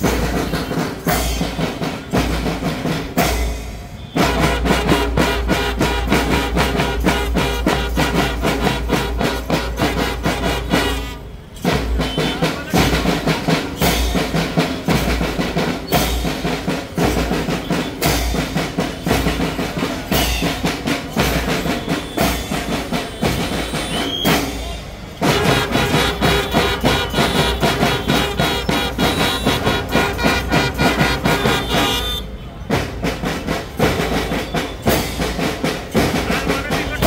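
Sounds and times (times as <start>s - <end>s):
marching drum band: 0.0s - 37.0s.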